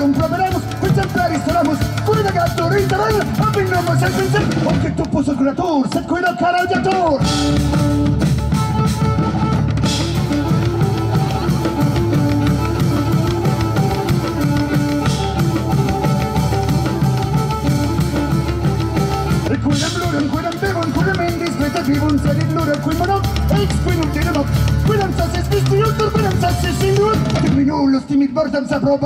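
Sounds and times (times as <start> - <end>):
folk-rock band playing: 0.0 - 28.1
drums beating: 0.0 - 29.0
wavering melody line: 7.3 - 26.4.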